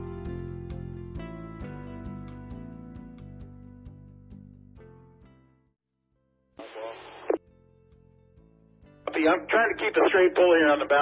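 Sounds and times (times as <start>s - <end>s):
voice over two-way radio: 6.6s - 7.4s, 9.1s - 11.0s.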